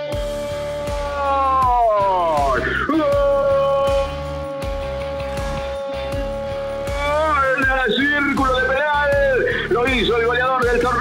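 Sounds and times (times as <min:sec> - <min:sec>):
background music with low beat: 0:00.0 - 0:11.0
commentator shouting goal: 0:01.1 - 0:04.4, 0:06.8 - 0:11.0.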